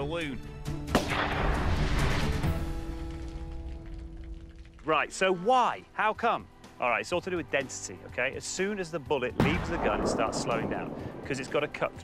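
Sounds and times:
background music with held notes: 0.0 - 12.0
gunshot crack and deep boom: 0.9 - 2.7, 9.4 - 11.6.

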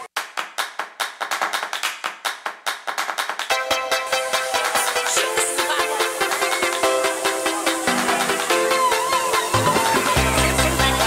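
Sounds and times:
hand claps: 0.0 - 5.2.

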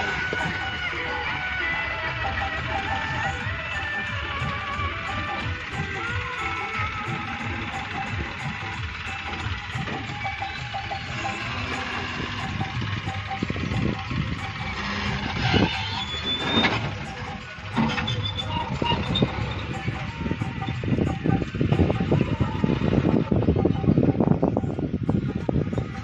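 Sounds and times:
tractor diesel engine running: 0.0 - 26.0.

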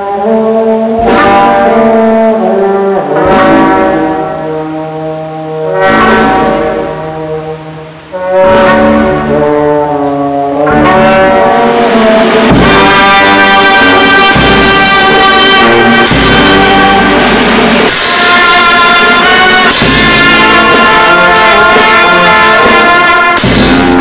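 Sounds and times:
brass band playing a march: 0.0 - 24.0
percussion crash: 10.7 - 24.0.

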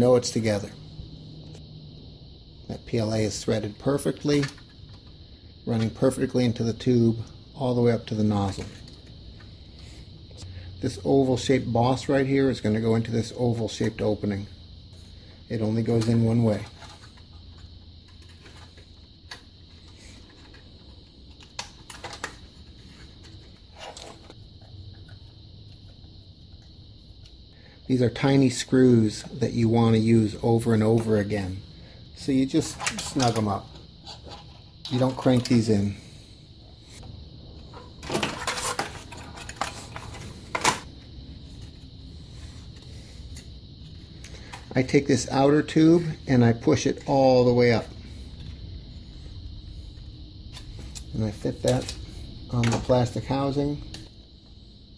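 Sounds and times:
faint steady hum: 0.0 - 54.9.

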